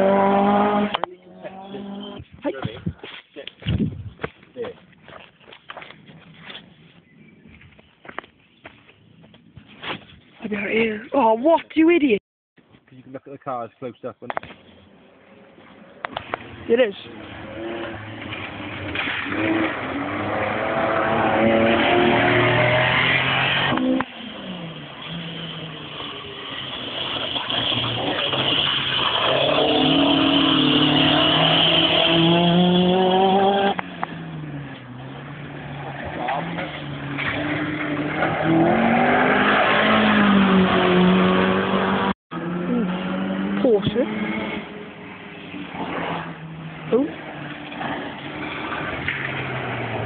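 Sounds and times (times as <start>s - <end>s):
rally car engines revving: 0.0s - 2.5s, 15.4s - 50.0s
gravel spraying from tyres: 22.3s - 31.8s.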